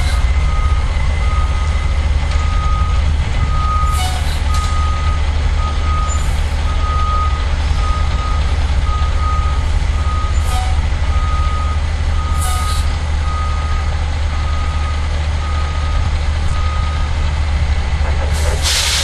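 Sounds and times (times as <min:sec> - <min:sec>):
diesel engine idling: 0:00.0 - 0:19.0
short hisses: 0:18.4 - 0:19.0.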